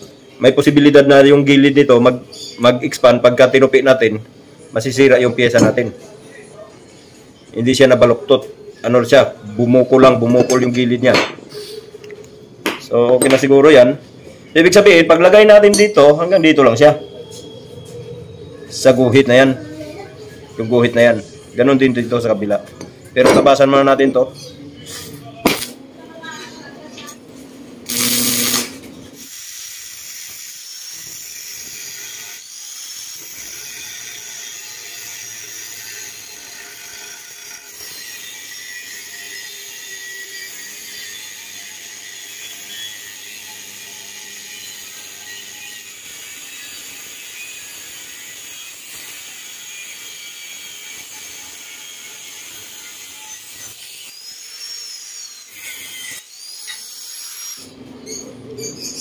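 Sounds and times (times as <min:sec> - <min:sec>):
angle grinder cutting steel: 0:27.9 - 0:58.2.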